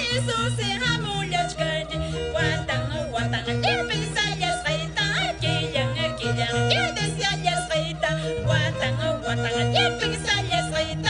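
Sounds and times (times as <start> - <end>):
violin: 0.0 - 11.0
woman singing high: 2.4 - 4.4, 6.0 - 7.9, 8.5 - 11.0.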